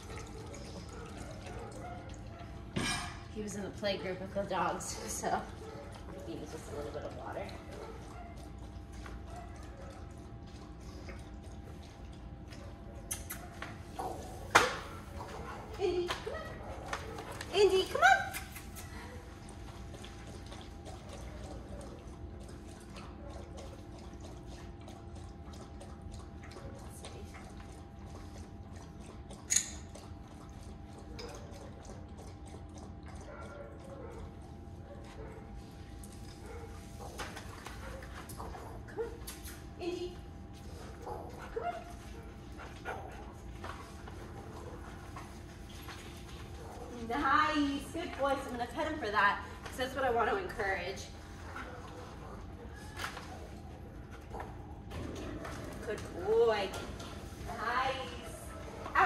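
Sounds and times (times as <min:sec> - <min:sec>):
room hum: 0:00.0 - 0:59.0.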